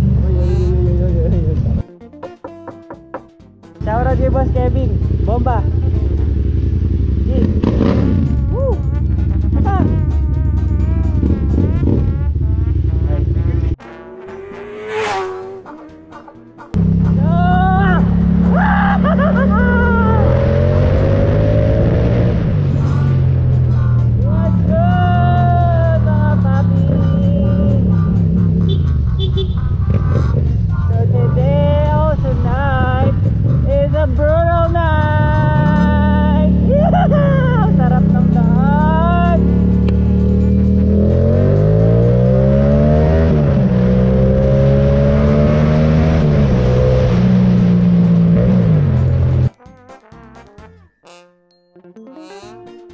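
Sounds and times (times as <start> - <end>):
motorcycle engine revving: 0.0 - 1.8, 3.8 - 49.6
music with singing: 15.6 - 20.6, 22.7 - 41.2.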